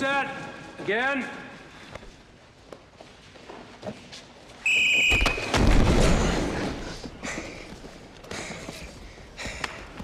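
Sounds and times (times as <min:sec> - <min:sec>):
whistle blast: 0:04.6 - 0:05.6.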